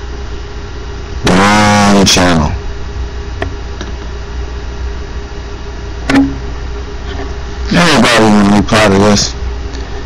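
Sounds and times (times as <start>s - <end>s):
low mechanical rumble: 0.0s - 10.0s
mid-pitched hum: 0.0s - 10.0s.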